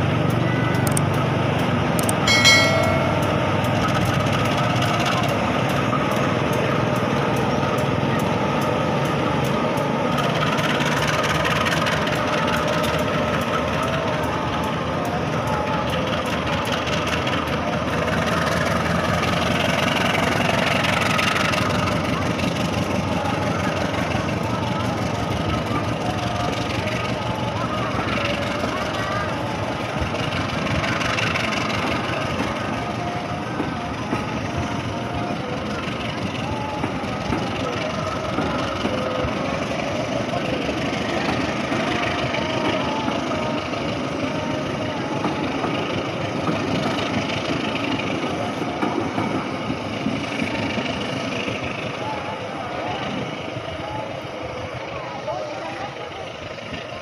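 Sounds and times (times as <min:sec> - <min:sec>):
diesel locomotive engine rumble: 0:00.0 - 0:57.0
train wheels rolling over rails: 0:00.0 - 0:57.0.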